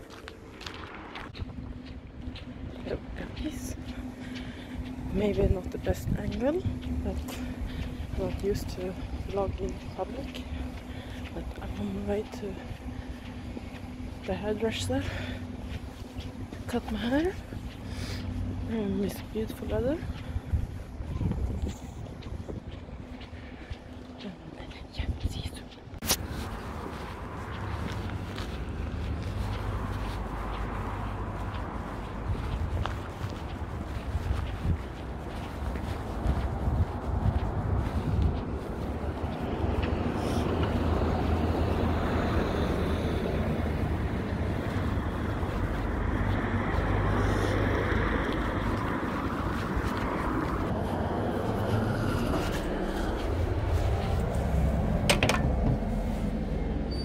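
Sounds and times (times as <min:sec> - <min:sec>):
background traffic: 0:00.0 - 0:57.0
wind rumble on microphone: 0:00.0 - 0:57.0.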